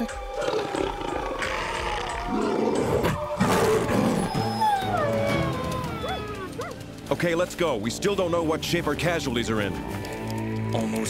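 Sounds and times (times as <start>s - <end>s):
cartoon wolves snarling and growling: 0.0s - 4.4s
big cat growling: 0.1s - 4.5s.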